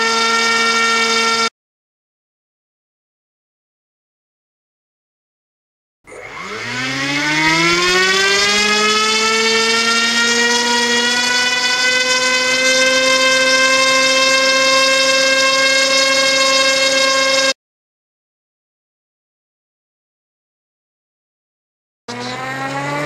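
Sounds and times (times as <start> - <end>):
small motor spinning propeller: 0.0 - 1.5, 6.1 - 17.6, 22.1 - 23.0.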